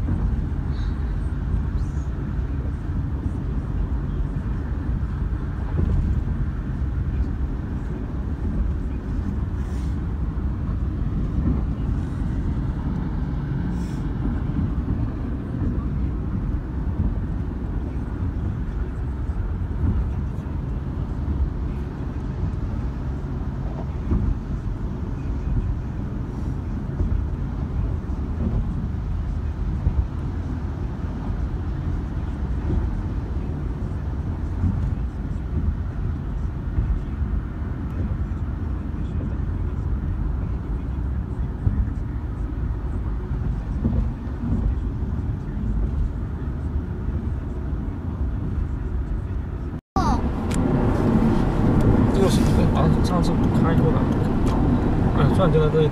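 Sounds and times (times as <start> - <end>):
car road and tyre noise: 0.0 - 55.9.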